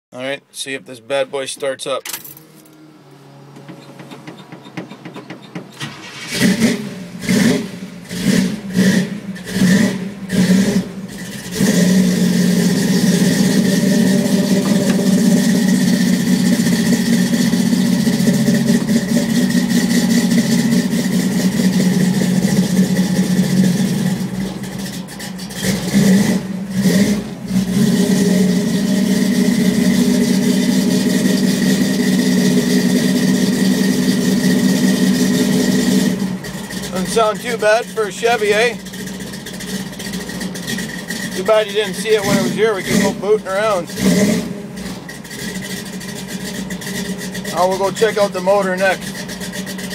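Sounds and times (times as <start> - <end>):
truck engine cranking: 1.8 - 2.8, 3.4 - 49.9
engine revving: 2.2 - 49.9
truck engine idling: 3.1 - 49.9.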